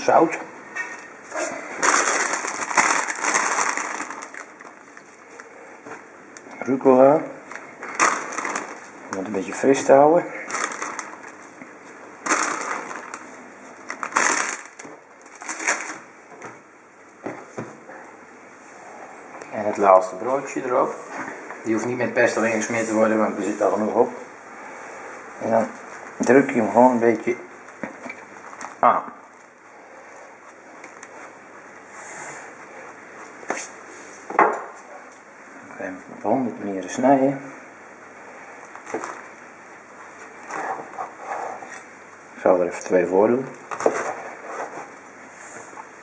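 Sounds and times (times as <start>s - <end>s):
plastic bag crinkling: 1.3s - 5.2s, 7.4s - 9.4s, 10.4s - 11.6s, 12.2s - 16.1s, 38.6s - 39.3s.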